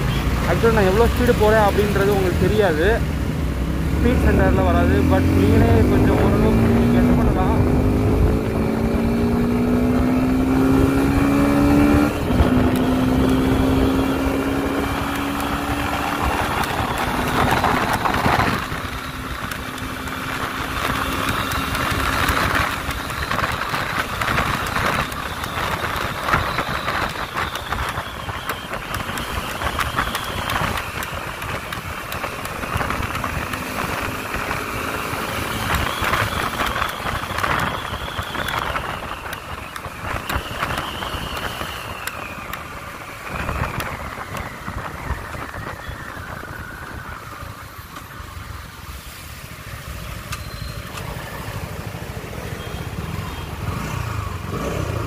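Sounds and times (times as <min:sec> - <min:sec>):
motorcycle engine accelerating: 0:00.0 - 0:48.5, 0:49.6 - 0:55.0
wind rushing over microphone: 0:00.0 - 0:50.3.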